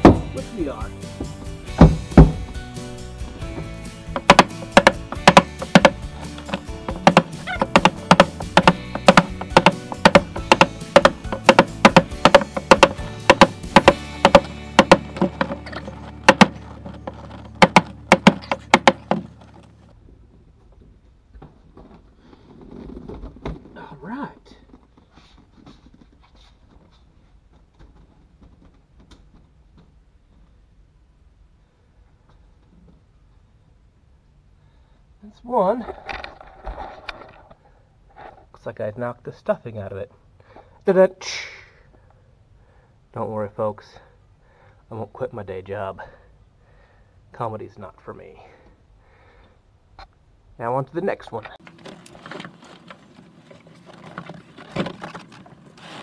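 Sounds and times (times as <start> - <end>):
music with steady beat: 0.0 - 16.6.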